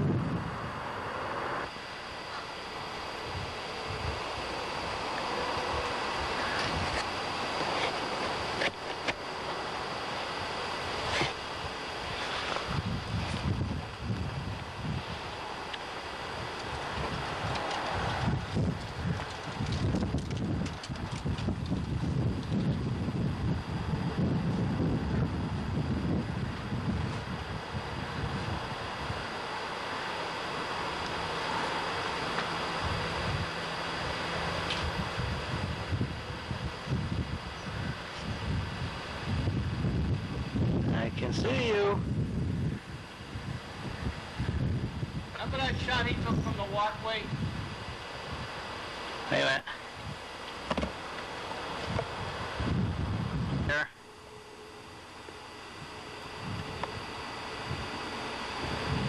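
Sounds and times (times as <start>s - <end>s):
wind buffeting microphone: 0.0s - 48.9s, 51.7s - 53.9s, 55.7s - 59.0s
thin high whine: 0.0s - 59.0s.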